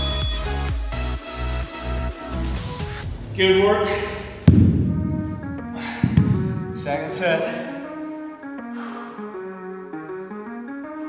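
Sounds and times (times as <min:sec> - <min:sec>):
background music: 0:00.0 - 0:11.0
dumbbells thudding on floor: 0:04.5 - 0:06.8.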